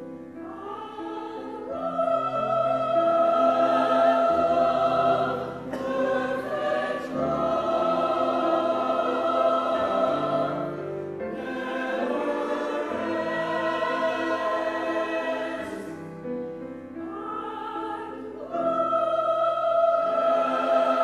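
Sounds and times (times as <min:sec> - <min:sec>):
church choir singing: 0:00.0 - 0:21.0
grand piano: 0:00.0 - 0:21.0.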